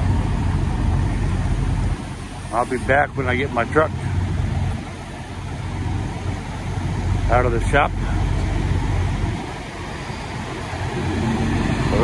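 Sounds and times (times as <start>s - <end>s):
diesel trucks idling: 0.0s - 12.0s.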